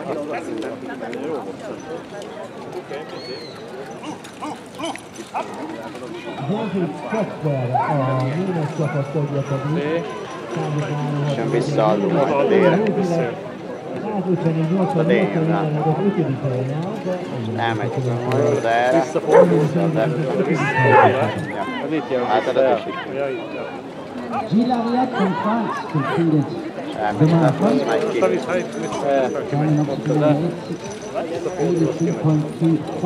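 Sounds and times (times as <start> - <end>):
man's voice: 19.1 - 21.5
people calling out: 20.6 - 21.8.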